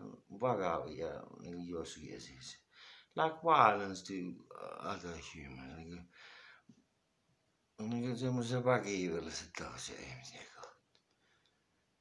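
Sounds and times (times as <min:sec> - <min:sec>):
man speaking softly: 0:00.0 - 0:06.2, 0:07.8 - 0:10.8.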